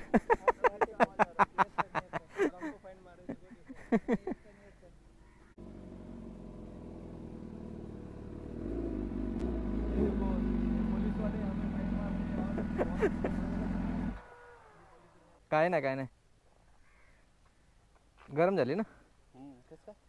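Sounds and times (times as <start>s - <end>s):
motorcycle engine idling: 5.4s - 15.2s.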